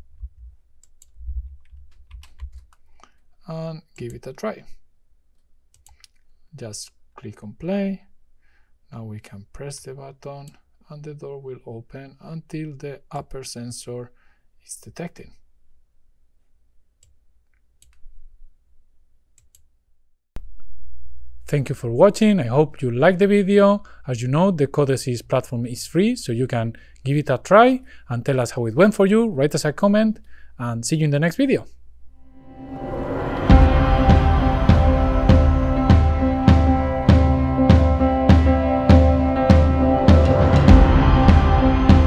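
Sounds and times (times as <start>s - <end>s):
keyboard keys clicking: 0.8s - 2.9s
computer mouse clicking: 5.4s - 6.3s, 17.0s - 18.1s, 19.4s - 19.7s
low rumble: 32.1s - 42.0s.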